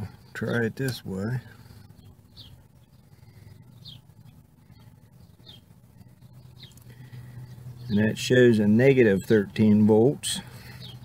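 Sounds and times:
faint low hum: 0:00.0 - 0:11.0
small bird chirping: 0:00.2 - 0:11.0.

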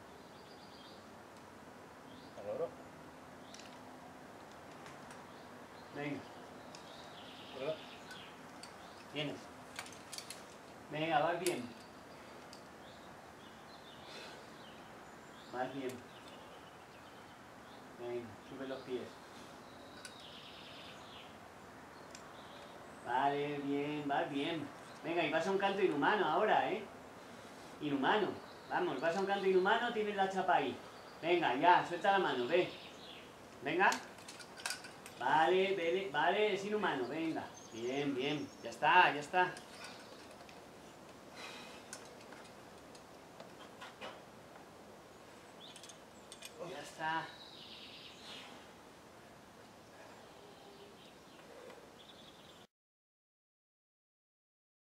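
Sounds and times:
outdoor background hiss: 0:00.0 - 0:52.7
faint scattered clicks: 0:03.4 - 0:05.4, 0:06.4 - 0:10.8, 0:11.4 - 0:13.0, 0:15.8 - 0:16.6, 0:19.8 - 0:20.4, 0:22.0 - 0:22.8, 0:33.0 - 0:35.2, 0:39.3 - 0:44.7, 0:45.6 - 0:46.6
soft bird chirps: 0:05.2 - 0:09.4, 0:11.4 - 0:23.7, 0:36.6 - 0:41.9, 0:45.1 - 0:48.7, 0:49.8 - 0:52.7.

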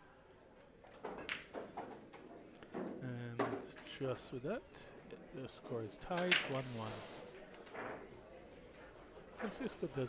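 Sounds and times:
pool balls clicking: 0:00.9 - 0:03.8.

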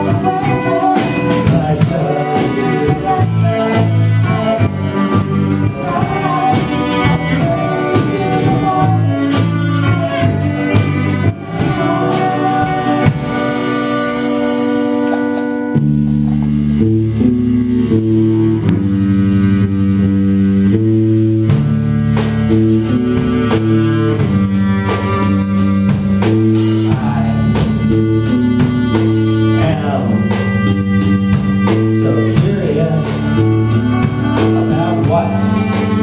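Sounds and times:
keyboard and guitar chords: 0:00.0 - 0:36.0
drum beat: 0:21.5 - 0:36.0.

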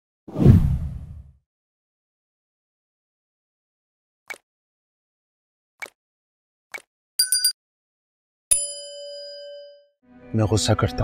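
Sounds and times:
deep whoosh: 0:00.3 - 0:01.3.

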